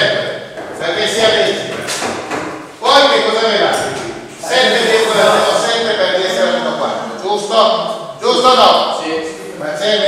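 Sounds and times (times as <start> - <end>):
speech: 0.0 - 1.9, 2.8 - 10.0.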